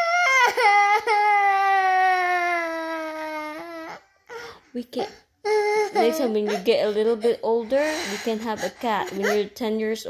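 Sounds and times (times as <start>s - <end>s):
girl wailing: 5.5s - 6.8s.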